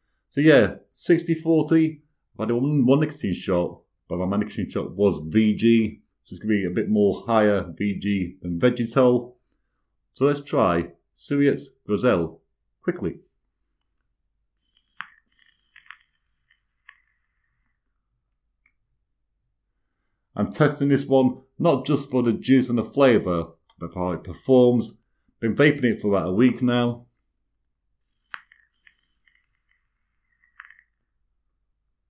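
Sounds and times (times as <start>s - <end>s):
e-cigarette coil sizzling: 13.8s - 18.0s, 28.0s - 31.2s.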